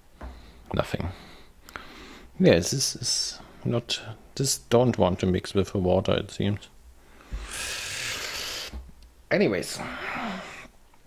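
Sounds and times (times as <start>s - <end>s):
long breathy exhale: 7.2s - 8.8s.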